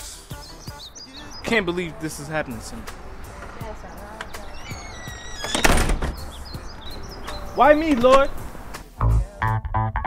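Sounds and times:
door hinge squeaking: 0:02.8 - 0:08.7
door slamming shut: 0:04.1 - 0:06.4, 0:07.2 - 0:08.5.

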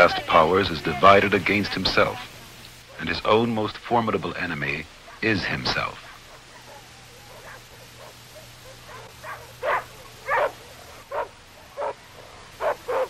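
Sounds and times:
low steady hum: 0:00.0 - 0:13.0
dog barking: 0:05.0 - 0:05.3, 0:05.9 - 0:13.0.

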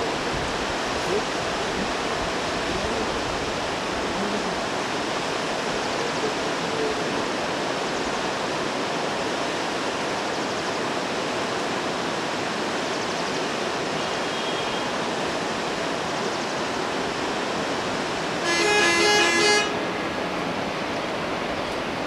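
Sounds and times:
steady rushing outdoor noise: 0:00.0 - 0:22.0
faint high whistle: 0:14.0 - 0:15.0.

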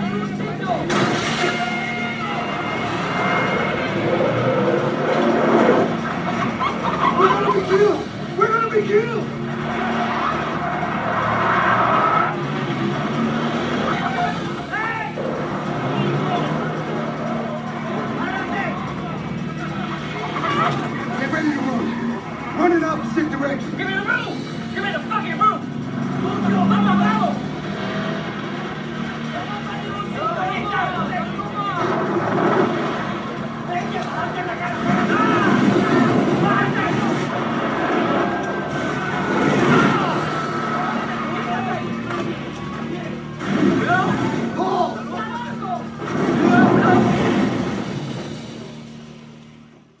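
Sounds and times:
car engine running: 0:00.0 - 0:50.0
music: 0:00.0 - 0:50.0.

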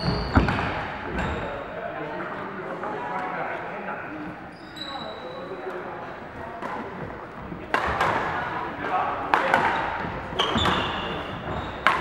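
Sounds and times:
shoe squeak on wooden floor: 0:00.0 - 0:01.7, 0:04.5 - 0:05.6, 0:09.8 - 0:12.0
babble of echoing voices: 0:00.0 - 0:12.0
rackets striking shuttlecocks: 0:07.7 - 0:12.0.

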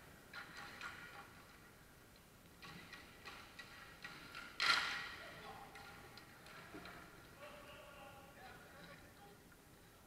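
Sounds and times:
sharp crack of puck impact: 0:02.6 - 0:05.2
hockey sticks clicking on ice: 0:02.6 - 0:07.5.

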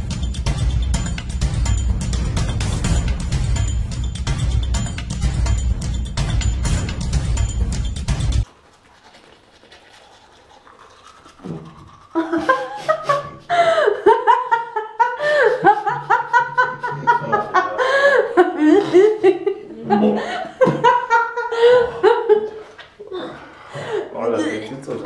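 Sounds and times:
music: 0:00.0 - 0:08.4.

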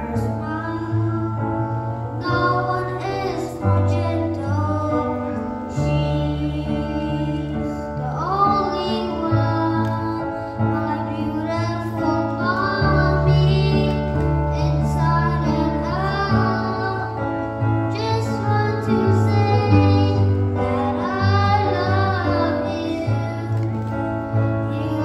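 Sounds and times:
boy singing into a microphone: 0:00.0 - 0:25.0.

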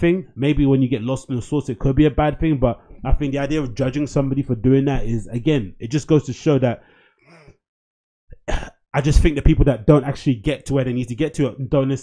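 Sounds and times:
man clearing his throat: 0:08.3 - 0:08.8.

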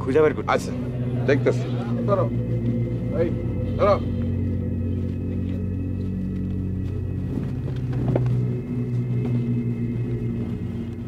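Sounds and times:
low droning background music: 0:00.0 - 0:11.0.

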